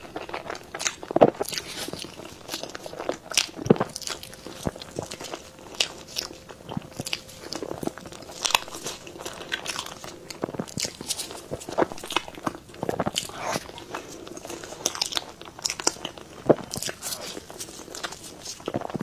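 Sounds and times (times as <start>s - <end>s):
person eating soft cake: 0.0s - 19.0s.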